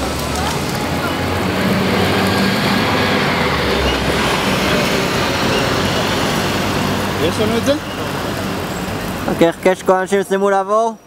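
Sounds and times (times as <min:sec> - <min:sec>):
traffic on a wet road: 0:00.0 - 0:10.8.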